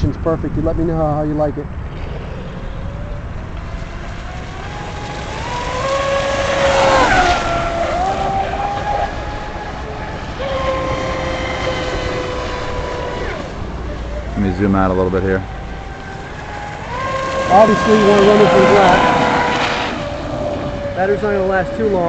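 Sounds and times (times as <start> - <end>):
electric motor whining: 1.8 - 22.0.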